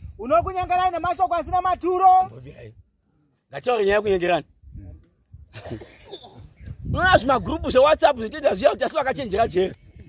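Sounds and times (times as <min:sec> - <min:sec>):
man preaching loudly: 0:00.2 - 0:02.5, 0:06.9 - 0:09.7.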